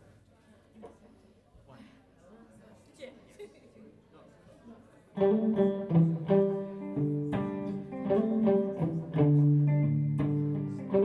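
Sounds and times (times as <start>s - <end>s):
faint room murmur: 0.0s - 11.0s
electric guitar chords: 5.2s - 11.0s.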